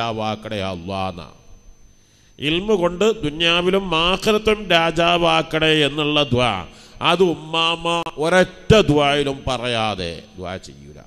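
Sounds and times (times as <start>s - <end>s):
man chanting melodically: 0.0s - 1.6s, 2.4s - 11.0s.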